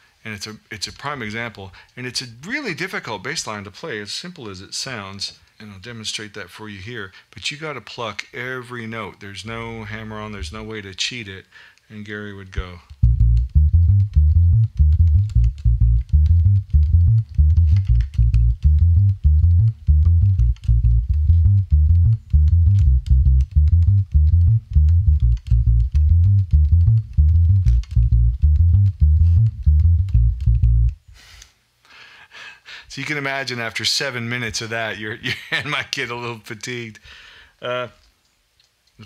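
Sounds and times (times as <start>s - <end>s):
electric bass playing reggae bassline: 12.6s - 31.0s.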